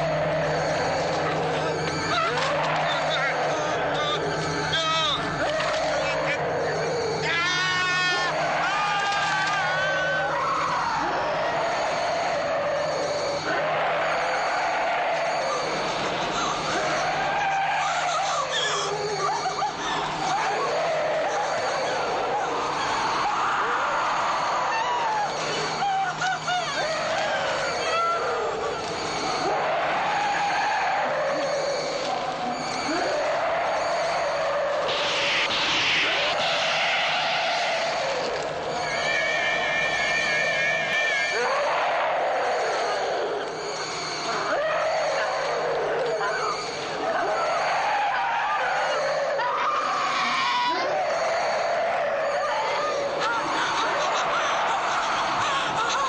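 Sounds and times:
monster shrill screeching: 0.0s - 56.0s.

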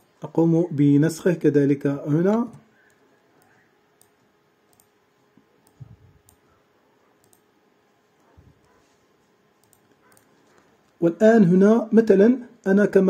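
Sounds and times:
computer mouse clicks: 2.8s - 6.5s, 7.2s - 7.5s, 9.6s - 11.0s.

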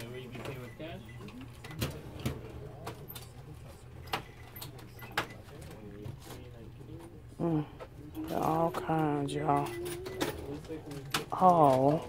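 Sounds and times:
murmured voices: 0.0s - 12.0s.

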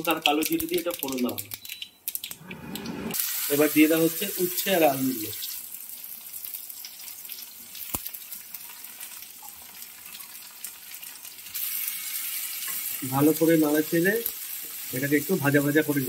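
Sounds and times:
vegetables sizzling in hot oil: 3.1s - 16.0s.

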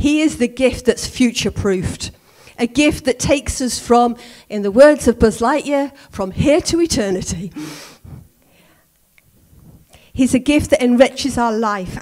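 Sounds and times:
woman talking over microphone: 0.0s - 7.6s, 10.2s - 12.0s
soft breath: 7.6s - 10.2s.

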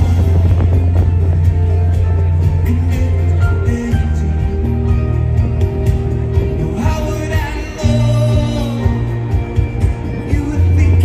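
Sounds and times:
drum kit: 0.0s - 11.0s
electric guitars: 0.0s - 11.0s
heavy bass line: 0.0s - 11.0s.

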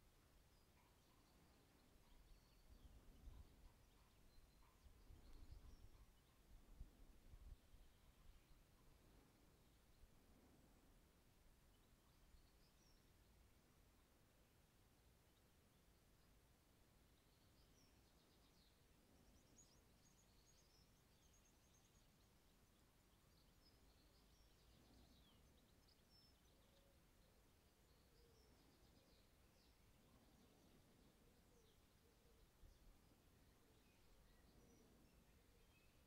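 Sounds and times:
distant birdsong: 0.0s - 36.0s
low background hiss: 0.0s - 36.0s.

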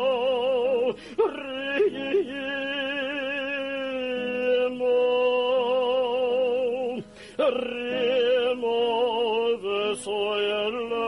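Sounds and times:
tenor cantorial chant: 0.0s - 11.0s.

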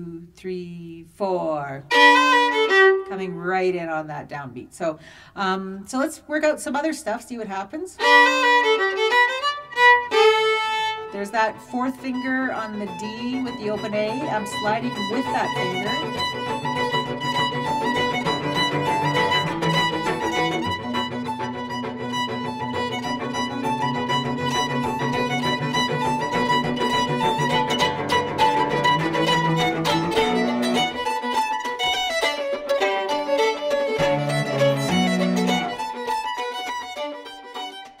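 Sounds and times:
fiddle tune on violin: 1.8s - 3.4s, 8.0s - 38.0s
low sustained backing notes: 11.1s - 31.0s.

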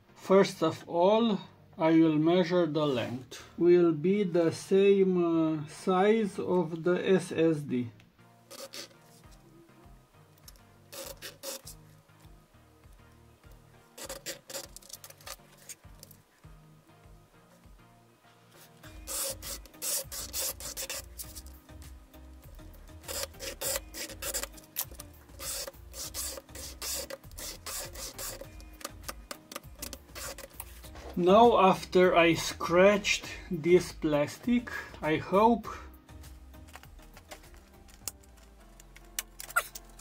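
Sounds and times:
scribing tool scratching plastic: 8.5s - 9.0s, 10.9s - 11.8s, 14.0s - 16.2s, 18.8s - 21.6s, 23.0s - 30.8s.

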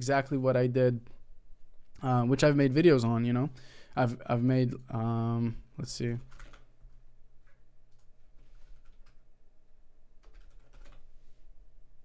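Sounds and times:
typing on computer keyboard: 6.2s - 7.0s, 10.2s - 11.1s.

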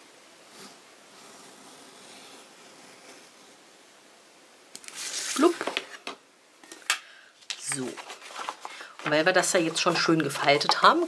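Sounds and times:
paper and ruler rustling: 4.8s - 6.1s, 7.5s - 11.0s.

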